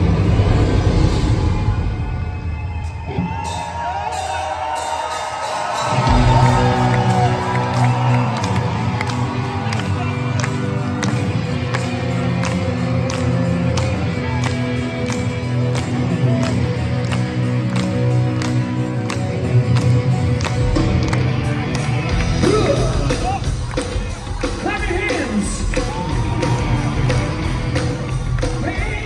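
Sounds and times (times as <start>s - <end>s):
crowd cheering and whooping: 0.0s - 29.0s
live rock band playing: 2.8s - 29.0s
audience clapping in time: 5.6s - 29.0s.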